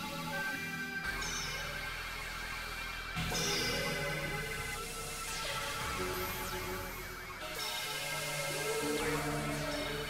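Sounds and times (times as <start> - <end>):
layered synthesizer drone tones: 0.0 - 10.0.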